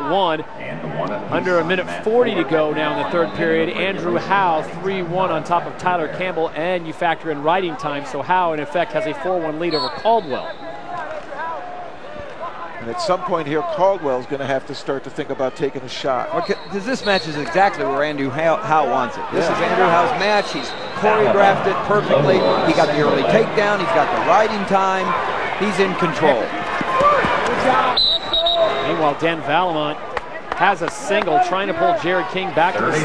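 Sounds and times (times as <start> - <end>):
arena crowd noise: 0.0 - 33.0
voices calling out: 16.3 - 29.2.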